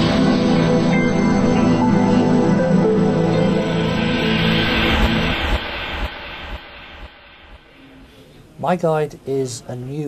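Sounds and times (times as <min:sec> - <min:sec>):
intro music: 0:00.0 - 0:08.3
broad whooshing swell: 0:00.0 - 0:08.6.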